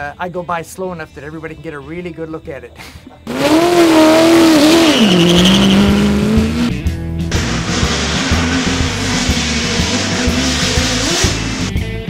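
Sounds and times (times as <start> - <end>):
background music: 0.0 - 12.0
car engine running hard: 3.3 - 11.8.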